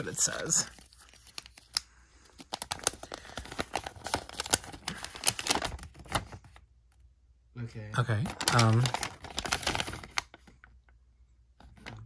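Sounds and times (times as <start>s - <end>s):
paper crinkling: 0.0s - 6.7s, 8.2s - 10.8s, 11.6s - 12.0s.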